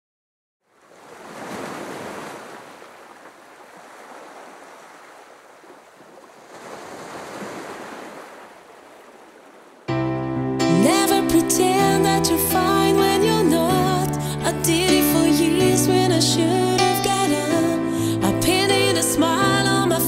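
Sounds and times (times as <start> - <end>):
sea waves washing in: 0.6 - 9.9.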